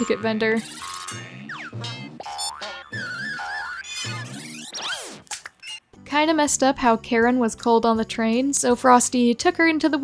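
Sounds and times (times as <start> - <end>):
springy cartoon boings: 0.0 - 5.8
background music: 0.0 - 10.0.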